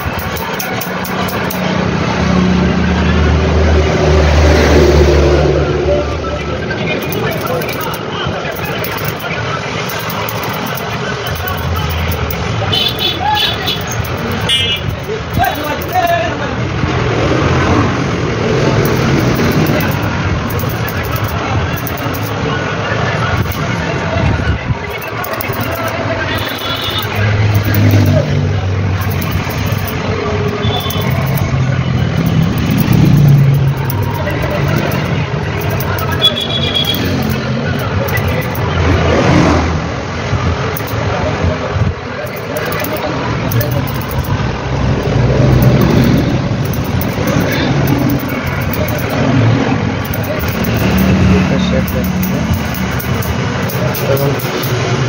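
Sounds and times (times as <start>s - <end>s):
people's voices: 0.0s - 55.0s
vehicle engine noise: 0.0s - 55.0s.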